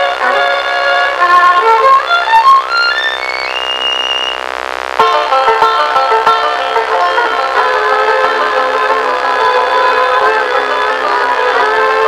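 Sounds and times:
band holding buzzy chord: 0:00.0 - 0:12.0
fiddle climbing to high note: 0:00.0 - 0:12.0
plucked strings: 0:05.0 - 0:12.0.

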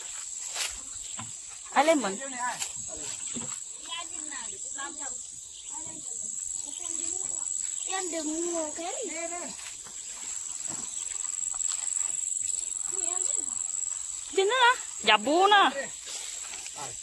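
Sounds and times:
high-pitched insect buzz: 0:00.0 - 0:17.0
people talking: 0:03.9 - 0:09.6, 0:12.9 - 0:13.6, 0:14.3 - 0:15.9.

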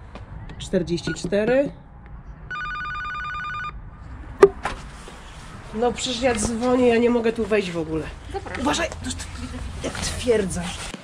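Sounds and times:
intercom warbling ring: 0:02.5 - 0:03.8.

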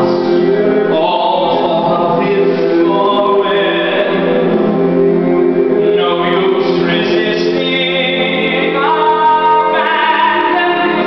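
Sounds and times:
man singing show tune: 0:00.0 - 0:04.9, 0:05.7 - 0:11.0
orchestral backing track: 0:00.0 - 0:11.0.

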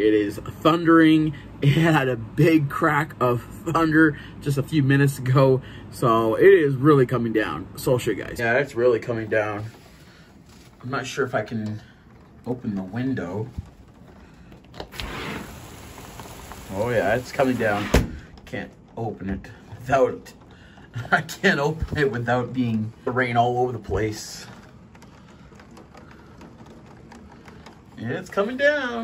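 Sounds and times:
window sliding open: 0:09.4 - 0:18.5
raindrops tapping on glass: 0:11.4 - 0:29.0
heavy rain hissing: 0:14.9 - 0:18.1.

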